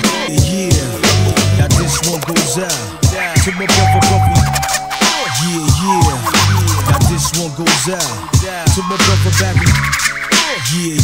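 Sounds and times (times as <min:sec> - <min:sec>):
hip-hop beat with deep bass: 0:00.0 - 0:11.0
steady held tone: 0:01.8 - 0:08.3
turntable scratching: 0:03.3 - 0:09.2.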